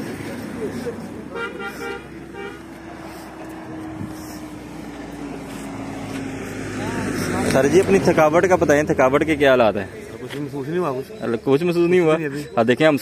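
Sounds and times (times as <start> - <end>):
traffic engine drone: 0.0 - 13.0
vehicle horn: 1.3 - 2.7.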